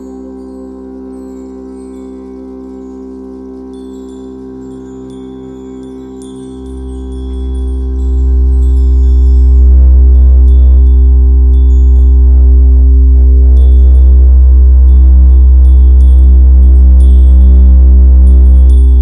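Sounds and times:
high chime-like tinkles: 0:00.0 - 0:19.0
sustained drone: 0:00.0 - 0:19.0
deep bass drone: 0:03.5 - 0:19.0.

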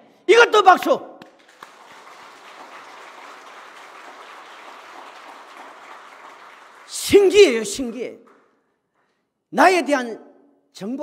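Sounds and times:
congregation applauding: 0:01.2 - 0:08.6.

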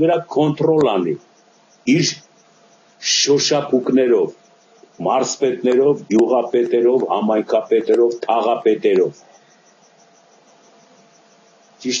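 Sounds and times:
faint high-pitched ticking: 0:00.0 - 0:12.0
faint steady hum: 0:00.0 - 0:12.0
low hiss: 0:00.0 - 0:12.0
man's voice: 0:03.0 - 0:04.3, 0:05.0 - 0:09.2.

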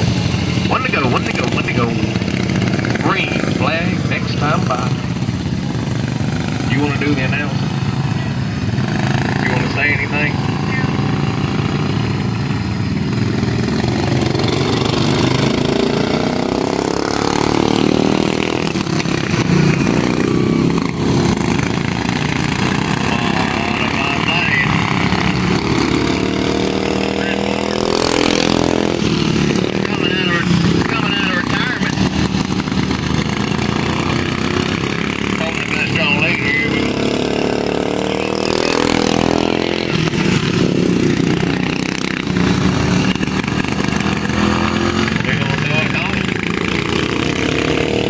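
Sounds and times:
racing kart engines passing by: 0:00.0 - 0:48.0.

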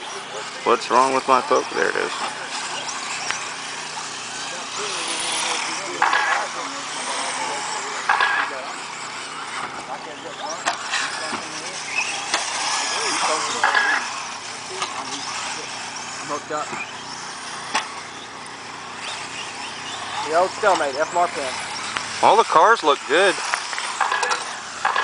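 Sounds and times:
rc car motors whining: 0:00.0 - 0:25.0.

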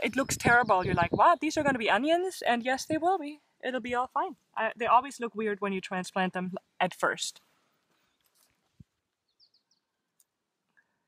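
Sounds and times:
hands rustling garden soil: 0:07.5 - 0:08.9
high bird chirps: 0:09.2 - 0:09.9.

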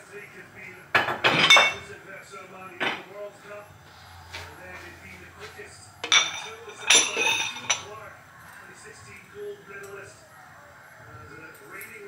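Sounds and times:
dishes and utensils clattering: 0:00.9 - 0:02.0, 0:02.8 - 0:03.3, 0:04.3 - 0:08.6.

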